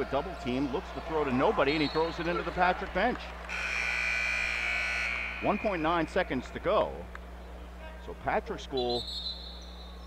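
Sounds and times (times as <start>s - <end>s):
gymnasium horn blast: 3.5s - 6.6s.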